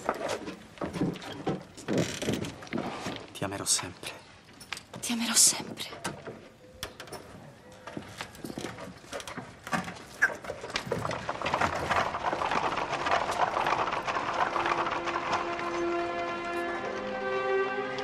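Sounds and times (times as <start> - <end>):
horse hooves clip-clopping: 0.0 - 3.8, 6.1 - 18.0
music: 15.0 - 18.0.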